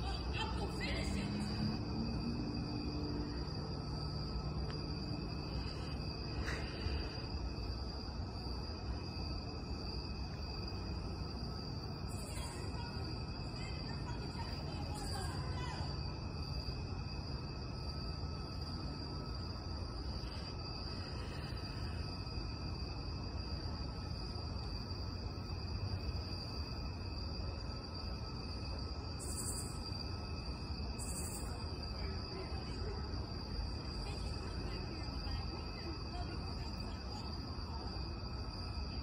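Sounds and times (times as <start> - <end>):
insect chorus trilling: 0.0 - 39.0
low background rumble: 0.0 - 39.0.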